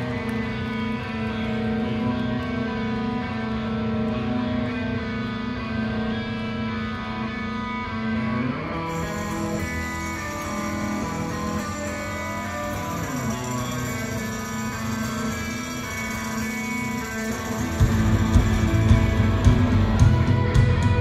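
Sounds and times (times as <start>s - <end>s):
electric guitars playing chords: 0.0s - 21.0s.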